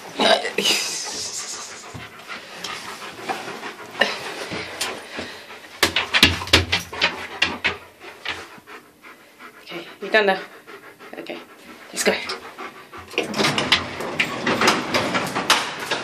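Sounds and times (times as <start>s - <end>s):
dog panting: 0.0s - 14.8s.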